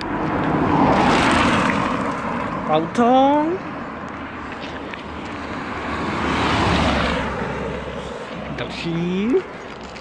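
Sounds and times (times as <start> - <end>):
car passing by: 0.0 - 2.7, 4.2 - 8.8.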